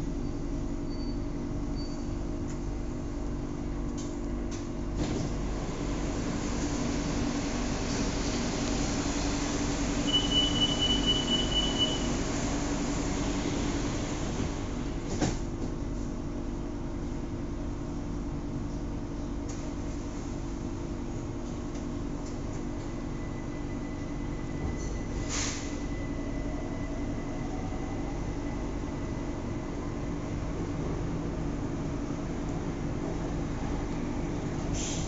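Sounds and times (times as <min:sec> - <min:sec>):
train electrical hum: 0:00.0 - 0:35.0.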